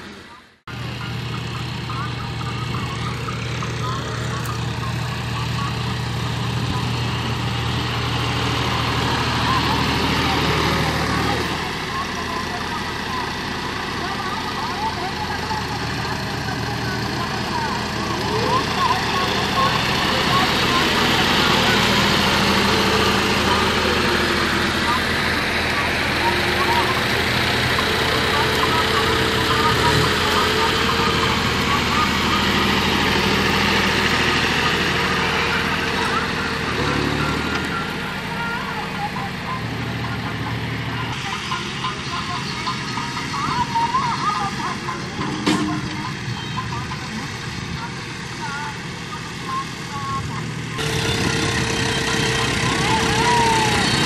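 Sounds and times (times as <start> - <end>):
tractor diesel engines running: 0.0 - 54.0.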